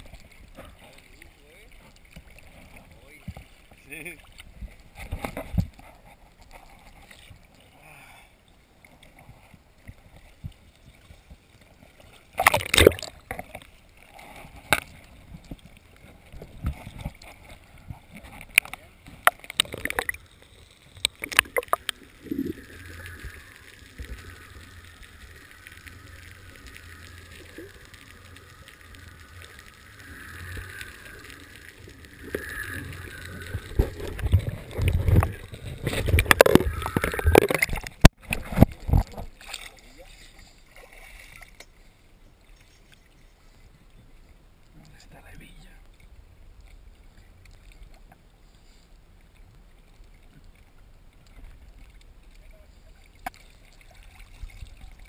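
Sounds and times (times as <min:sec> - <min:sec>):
sea water sloshing and splashing: 0:00.0 - 0:55.0.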